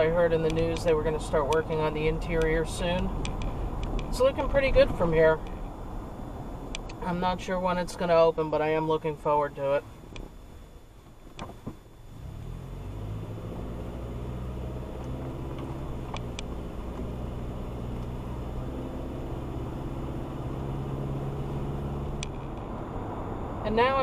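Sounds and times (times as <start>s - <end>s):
car engine and road noise: 0.0s - 24.0s.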